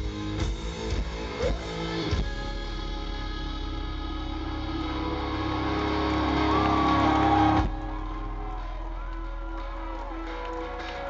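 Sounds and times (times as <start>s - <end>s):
drums: 0.0s - 11.0s
electric guitars: 0.0s - 11.0s.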